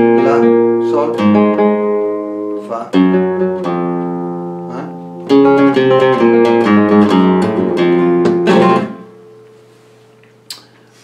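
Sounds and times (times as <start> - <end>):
guitar chord ringing out: 0.0 - 9.8.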